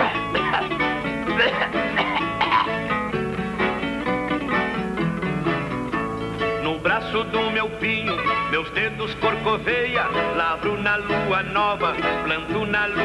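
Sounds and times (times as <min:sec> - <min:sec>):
acoustic guitar picking notes: 0:00.0 - 0:13.0.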